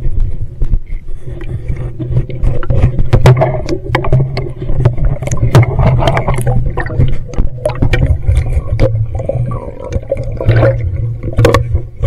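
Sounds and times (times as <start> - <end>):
underwater bubbling rumble: 0.0 - 12.0.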